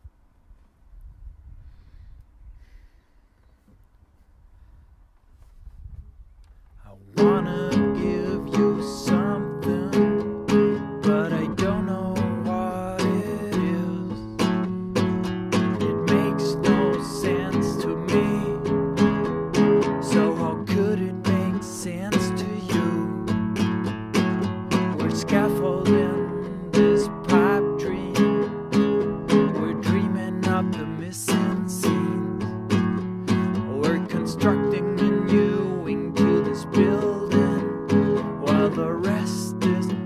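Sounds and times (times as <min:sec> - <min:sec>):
classical guitar strummed: 0:07.1 - 0:40.0.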